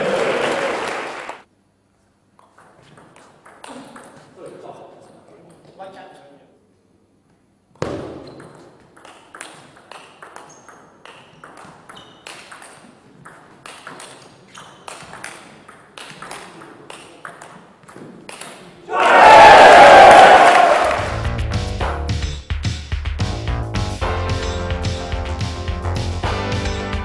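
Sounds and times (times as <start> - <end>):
table tennis ball clicking: 8.3 - 18.6
loud shout: 18.9 - 21.0.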